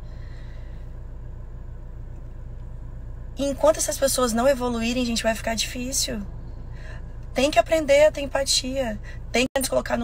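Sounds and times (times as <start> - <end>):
car engine rumble from inside cabin: 0.0 - 10.0.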